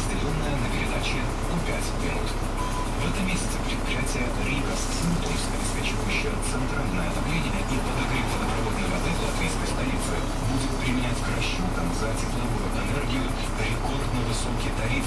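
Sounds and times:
bus engine humming: 0.0s - 15.0s
news speech on radio: 0.0s - 15.0s.

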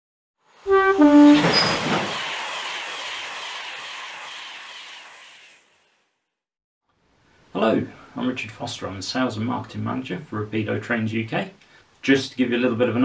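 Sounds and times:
two-note train horn: 0.7s - 1.6s
train rushing past: 0.7s - 5.9s.

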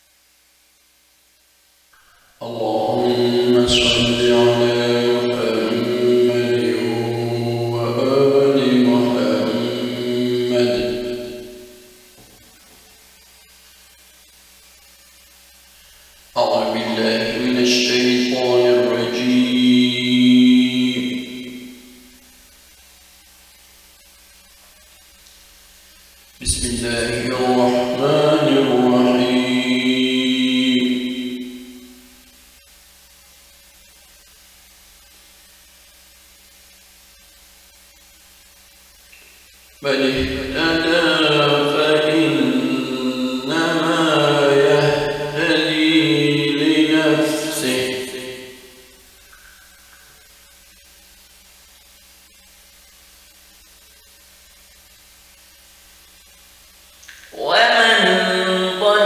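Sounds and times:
steady low hum: 0.0s - 59.0s
man reciting melodically: 2.4s - 11.5s, 16.4s - 21.5s, 26.4s - 31.6s, 39.8s - 48.7s, 57.1s - 59.0s.

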